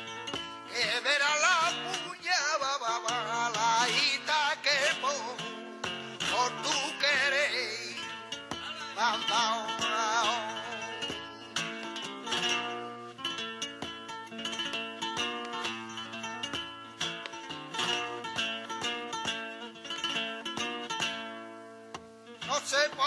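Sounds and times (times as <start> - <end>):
person singing: 0.0 - 12.4, 22.4 - 23.0
flamenco guitar playing: 0.0 - 23.0.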